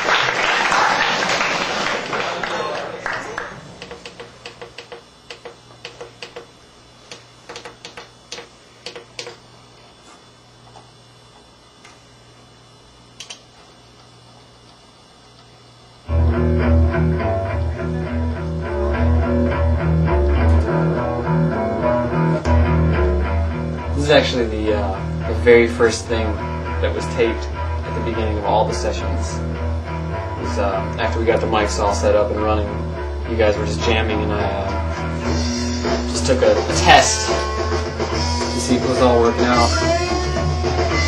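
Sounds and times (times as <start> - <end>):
faint steady hum: 0.0 - 41.0
clicks and taps: 3.8 - 6.5, 7.1 - 9.4
band jamming on bass and guitar: 16.1 - 41.0.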